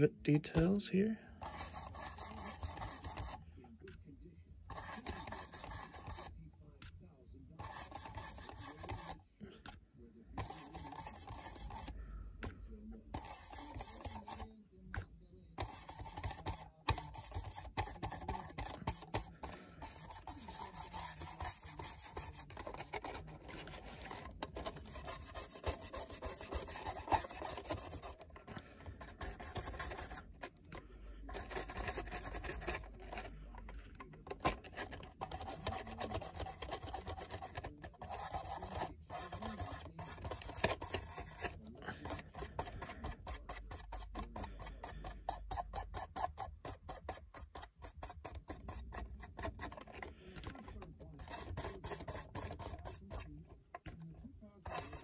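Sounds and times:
brush scrubbing on plastic: 1.4 - 3.4, 4.7 - 6.3, 7.6 - 9.2, 10.4 - 11.9, 13.1 - 14.5, 15.6 - 54.0, 54.6 - 55.0.

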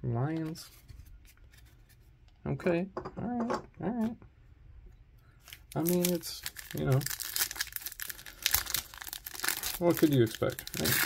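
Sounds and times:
plastic sleeve crinkling: 5.4 - 11.0.

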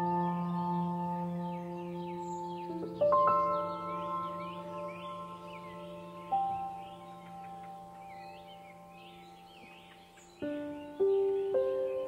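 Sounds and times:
bell-like ambient music notes: 0.0 - 12.0
birds chirping: 0.0 - 12.0.

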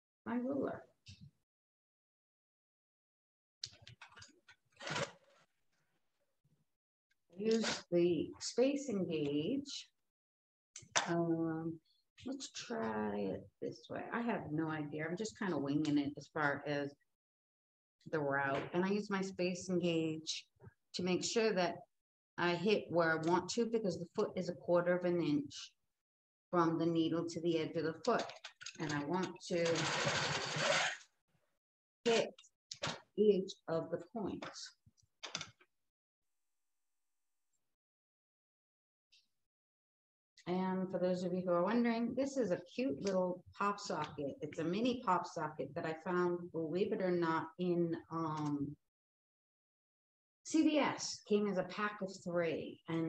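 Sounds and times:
quilting machine stitching: 4.8 - 5.4, 29.6 - 31.0.

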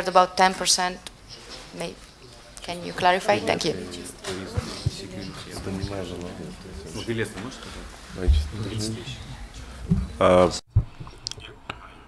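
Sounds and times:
quiet talk: 1.3 - 9.8.

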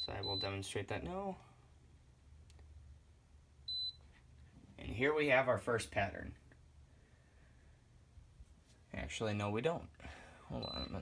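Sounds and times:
short high-pitched beep: 10.6 - 11.0.

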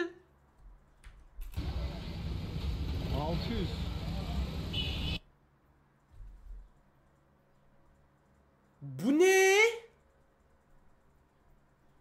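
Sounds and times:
busy street din: 1.5 - 5.2.

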